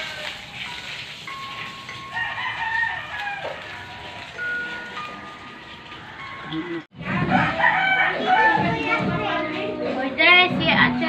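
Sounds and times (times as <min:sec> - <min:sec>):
water spraying from a hose: 0:00.0 - 0:06.8
rooster crowing: 0:02.1 - 0:04.4, 0:07.3 - 0:08.8.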